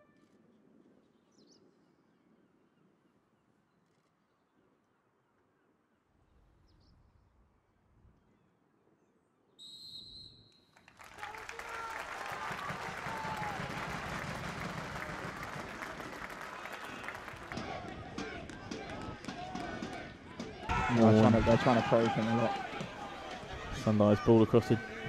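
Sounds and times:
crowd applause: 10.8 - 20.1, 20.7 - 25.0
crowd voices: 12.7 - 25.0.

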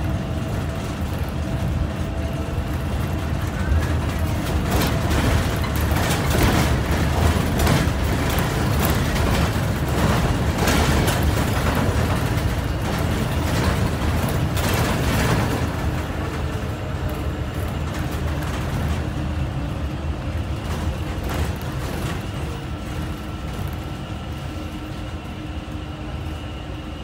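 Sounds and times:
road noise: 0.0 - 25.8
bus engine: 0.0 - 27.0
knocks and rattles: 3.1 - 16.8.

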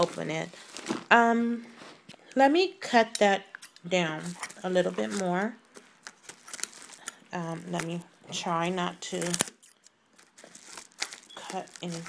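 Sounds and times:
envelope crinkling and rustling: 0.0 - 1.1, 4.2 - 12.0.

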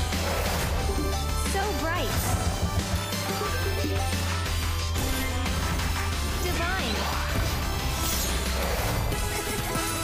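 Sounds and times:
slot game background music: 0.0 - 10.0.

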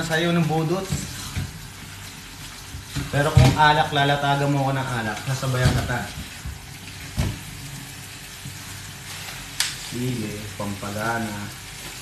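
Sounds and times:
tap water running into sink: 0.0 - 12.0.

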